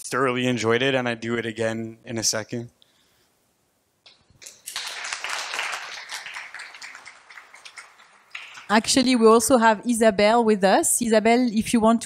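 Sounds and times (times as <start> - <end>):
audience applauding: 4.4 - 9.1.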